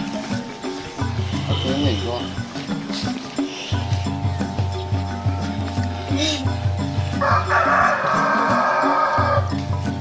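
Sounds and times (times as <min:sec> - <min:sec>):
background music: 0:00.0 - 0:10.0
rooster crowing: 0:07.1 - 0:09.6.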